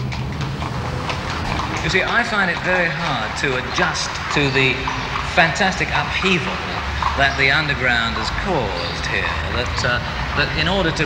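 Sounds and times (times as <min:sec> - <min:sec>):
horses hooves clip-clopping: 0:00.0 - 0:11.0
steady background noise: 0:00.0 - 0:11.0.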